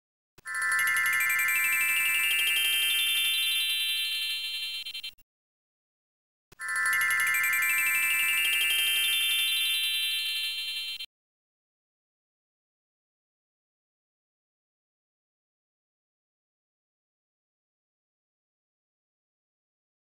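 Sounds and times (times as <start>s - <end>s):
electronic ringing chime with trill: 0.5s - 5.2s, 6.6s - 11.1s.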